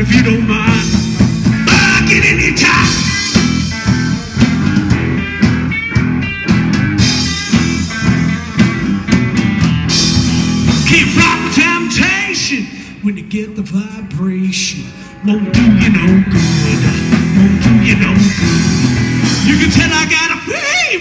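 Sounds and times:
electric guitar lines: 0.0 - 13.1, 14.1 - 20.5
drum kit beat: 0.0 - 20.5
live rock band playing: 0.0 - 21.0.

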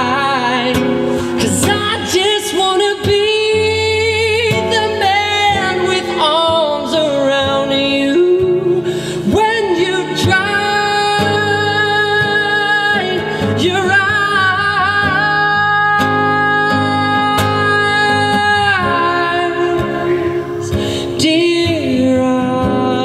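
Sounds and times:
strummed acoustic guitar: 0.0 - 23.0
man singing: 1.4 - 23.0.

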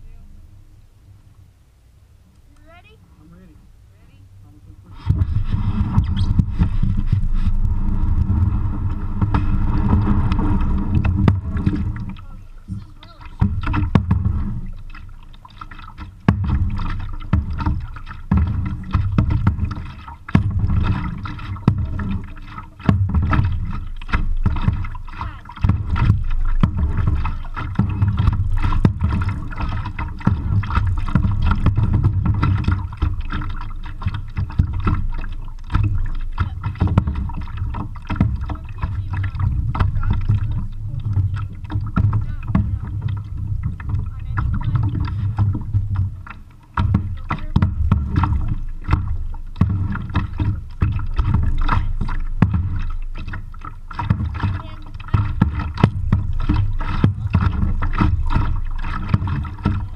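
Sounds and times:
low rumble of mic rubbing: 0.0 - 59.9
knocks and bumps: 4.9 - 59.9.

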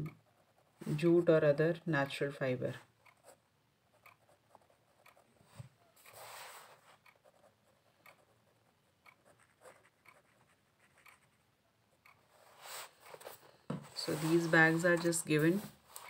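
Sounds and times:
pen scratching on paper: 0.2 - 1.2, 3.0 - 16.0.

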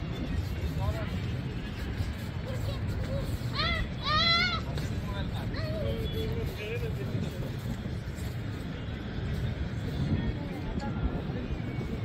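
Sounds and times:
faint indistinct voices: 0.0 - 12.0.

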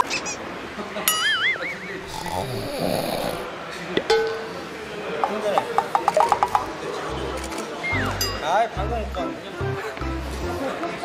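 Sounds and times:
breathy snore: 2.0 - 3.5.

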